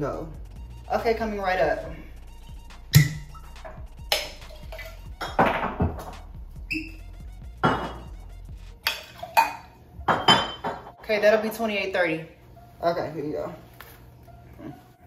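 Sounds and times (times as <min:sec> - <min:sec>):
background music: 0:00.0 - 0:15.0
glassware and bottles clinking: 0:07.6 - 0:08.1, 0:08.8 - 0:11.0.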